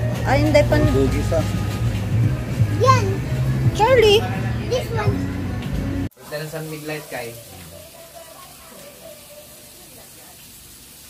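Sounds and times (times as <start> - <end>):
meat sizzling on grill pan: 6.2 - 11.0.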